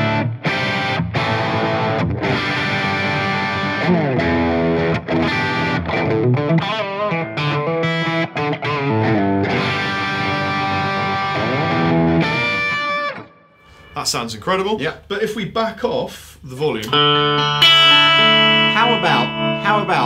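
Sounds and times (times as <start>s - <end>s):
overdriven electric guitar: 0.0s - 14.0s, 16.8s - 20.0s.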